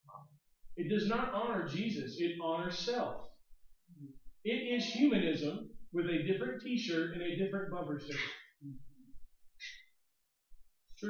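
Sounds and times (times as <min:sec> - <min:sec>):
person humming mm: 0:08.6 - 0:09.0.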